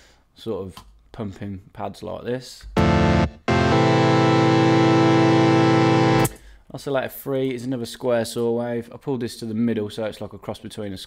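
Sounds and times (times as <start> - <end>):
sustained buzzy synthesizer tone: 2.8 - 6.4.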